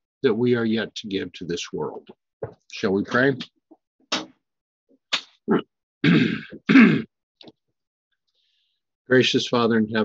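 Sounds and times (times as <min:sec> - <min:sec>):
man clearing his throat: 0:05.5 - 0:07.1.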